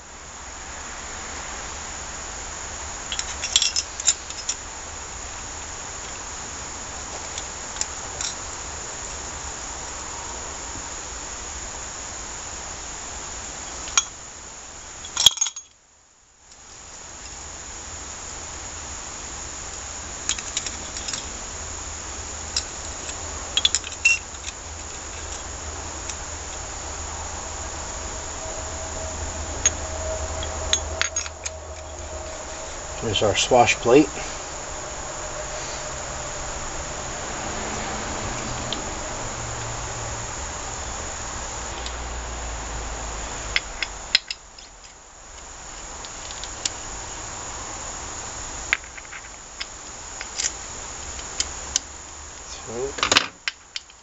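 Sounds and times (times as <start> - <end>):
steady background hiss: 0.0 - 54.0
metallic clinks of small parts: 3.1 - 4.6, 15.0 - 15.8, 22.6 - 25.5, 30.4 - 32.7.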